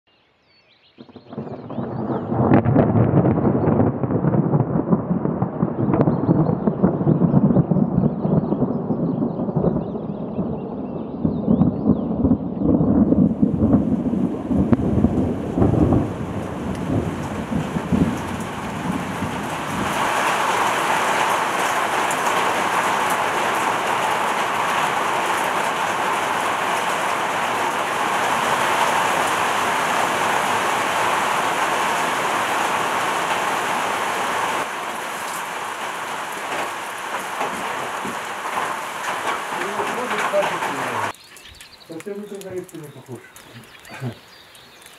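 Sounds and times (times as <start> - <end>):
thunder rumbling: 1.0 - 41.2
heavy rain: 1.1 - 44.9.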